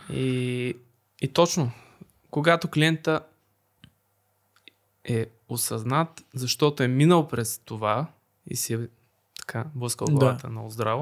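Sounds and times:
person speaking: 0.0 - 3.3, 5.1 - 11.0.

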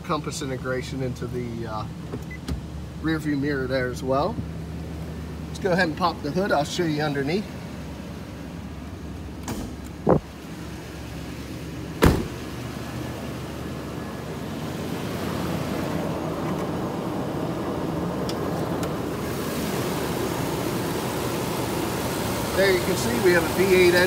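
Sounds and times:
heavy thump: 12.0 - 12.4.

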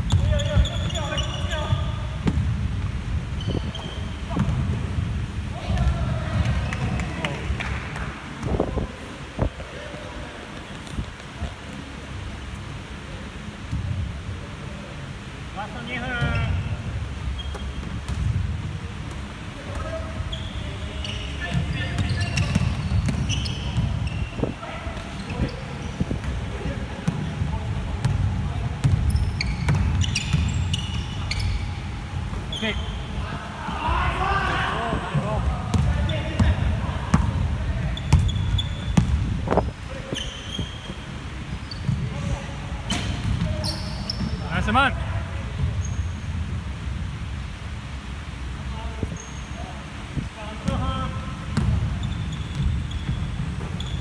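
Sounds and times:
sneakers squeaking: 0.0 - 2.6, 3.3 - 5.0, 10.4 - 11.8, 16.1 - 18.4, 19.1 - 44.8, 45.4 - 46.4, 49.1 - 49.7, 50.6 - 54.0
basketball bouncing on wooden floor: 28.8 - 30.5.

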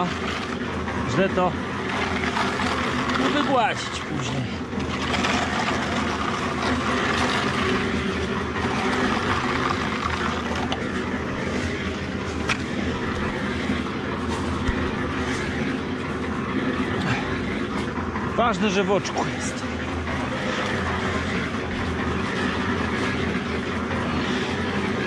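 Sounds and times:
machine humming with rushing noise: 0.0 - 25.0.

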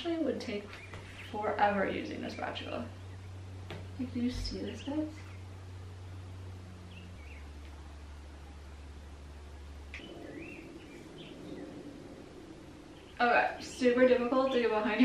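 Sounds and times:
low hum: 0.0 - 15.0
faint bird chirps: 0.6 - 1.6, 4.3 - 5.7, 6.7 - 14.9.

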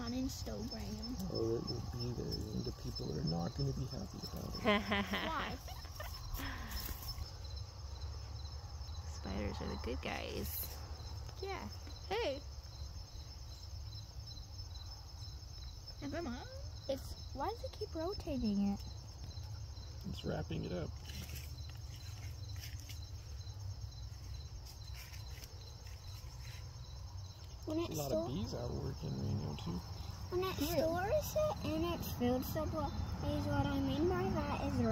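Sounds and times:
constant low rumble: 0.0 - 12.3
crickets trilling: 0.0 - 34.9.

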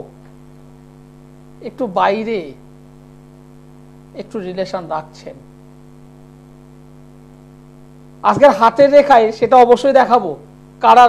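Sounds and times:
electrical mains hum: 0.0 - 11.0
man speaking: 1.6 - 2.6, 4.1 - 5.5, 8.2 - 11.0.

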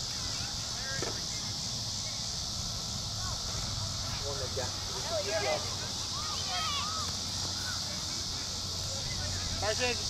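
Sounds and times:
constant high hiss: 0.0 - 10.0
distant shouting voices: 0.0 - 10.0.

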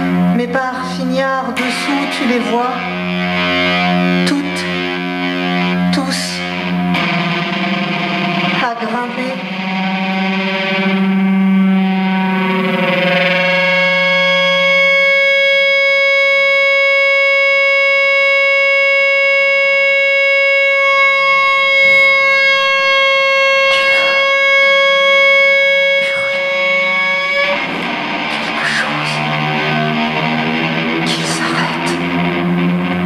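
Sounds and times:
prepared guitar drone: 0.0 - 33.0
lower tone: 9.4 - 33.0.

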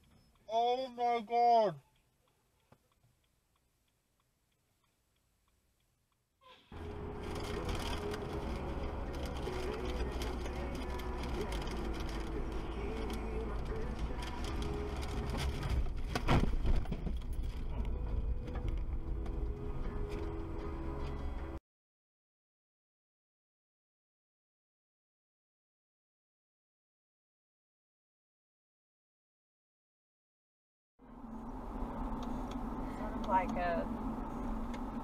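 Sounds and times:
car road and engine rumble: 6.6 - 21.6, 31.0 - 35.0
loud car collision thump: 16.0 - 17.2.

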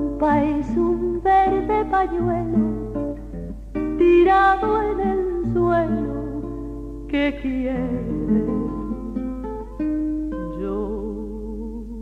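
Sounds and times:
plucked guitars playing tango: 0.0 - 12.0.

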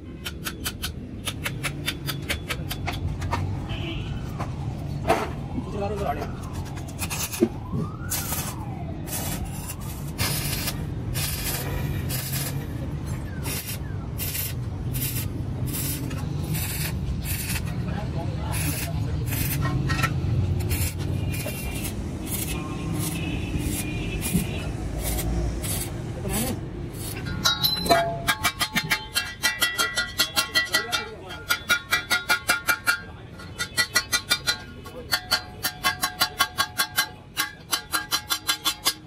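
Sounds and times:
welding arc crackling: 8.1 - 12.7, 13.4 - 17.8, 18.5 - 19.6, 20.5 - 27.2.

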